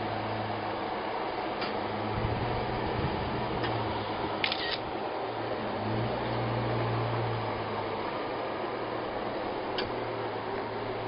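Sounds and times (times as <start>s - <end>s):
distant engine low hum: 0.0s - 11.0s
sharp clicks: 4.4s - 4.8s.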